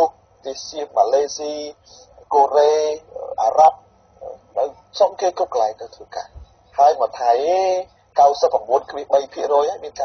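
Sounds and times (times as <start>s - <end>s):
person speaking over phone: 0.0s - 10.0s.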